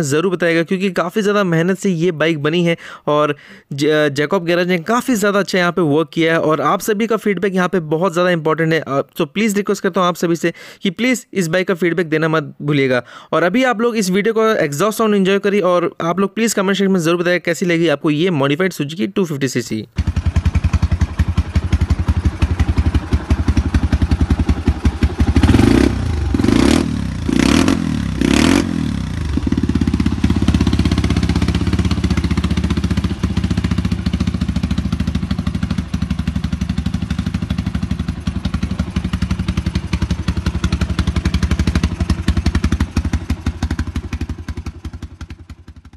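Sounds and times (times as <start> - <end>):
motorcycle engine idling: 20.0 - 45.9
motorcycle throttle blips: 20.0 - 45.9.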